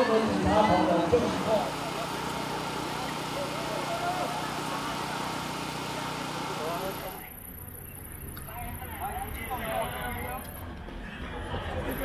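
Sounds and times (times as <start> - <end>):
distant indistinct voices: 0.0 - 12.0
street noise: 0.0 - 12.0.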